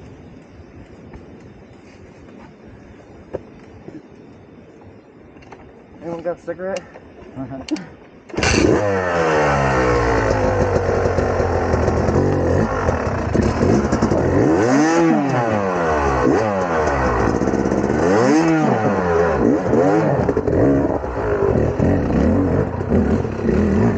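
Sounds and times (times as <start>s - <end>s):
dirt bike engine revving: 8.3s - 23.9s.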